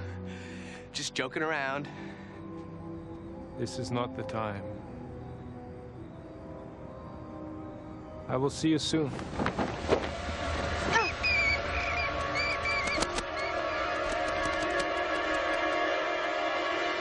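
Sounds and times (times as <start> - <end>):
eerie sustained chord music: 0.0 - 17.0
high warbling chirps: 10.8 - 14.0.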